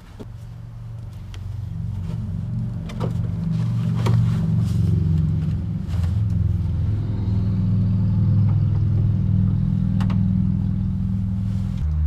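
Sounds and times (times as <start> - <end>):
vehicle engine idling: 0.0 - 12.0.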